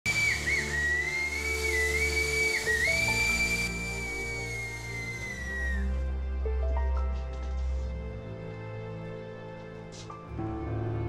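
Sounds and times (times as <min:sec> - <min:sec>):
steam locomotive whistle: 0:00.0 - 0:06.0.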